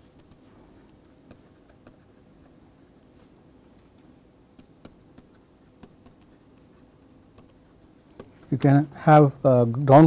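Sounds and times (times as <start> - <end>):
stylus tapping and scratching tablet: 0.0 - 8.7.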